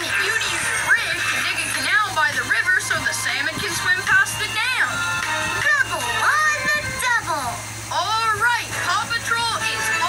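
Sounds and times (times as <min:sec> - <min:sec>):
cartoon voice from television: 0:00.0 - 0:01.7.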